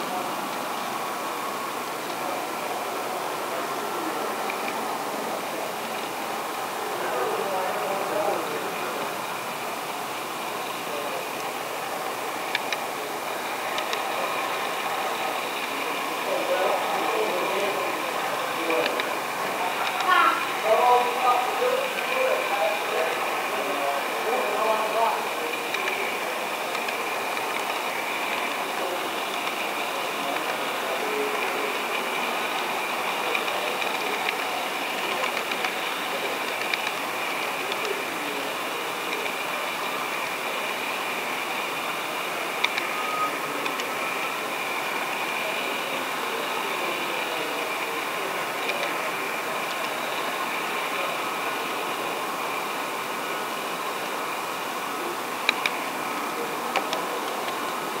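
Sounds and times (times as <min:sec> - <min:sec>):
model train motor whir: 0:03.4 - 0:58.0
wheels rolling on rails: 0:05.4 - 0:58.0.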